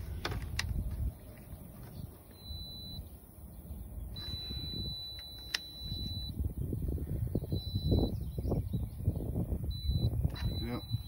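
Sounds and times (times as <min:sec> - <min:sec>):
high-pitched tester beep: 0:02.3 - 0:03.1, 0:04.2 - 0:06.4, 0:07.3 - 0:08.5, 0:09.6 - 0:11.0.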